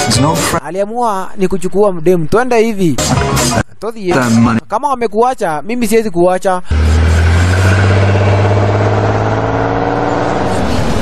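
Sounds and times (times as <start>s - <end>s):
car engine running: 6.7s - 11.0s.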